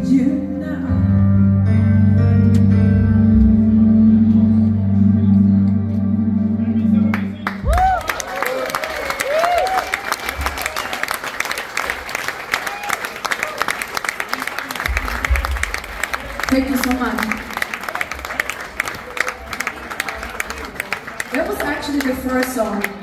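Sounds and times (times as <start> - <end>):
live band chord ringing: 0.6 - 7.6
audience clapping and cheering: 7.0 - 23.0
whoops: 7.6 - 11.1, 12.5 - 13.6.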